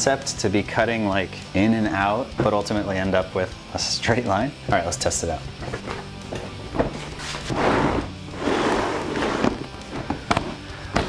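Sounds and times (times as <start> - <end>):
shell scraping across wooden bench: 5.6 - 10.6.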